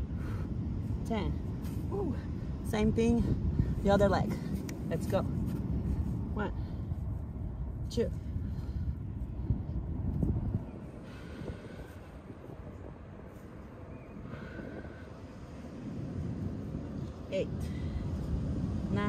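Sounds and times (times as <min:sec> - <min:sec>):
low outdoor rumble: 0:00.0 - 0:19.0.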